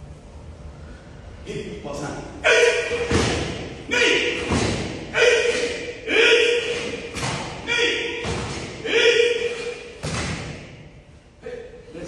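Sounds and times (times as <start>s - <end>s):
person shouting: 2.4s - 9.9s.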